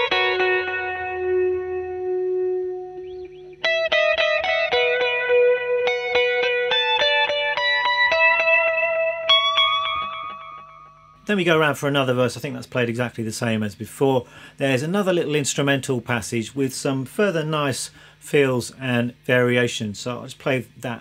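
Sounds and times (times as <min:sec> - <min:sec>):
electric guitar lead with delay: 0:00.0 - 0:11.3.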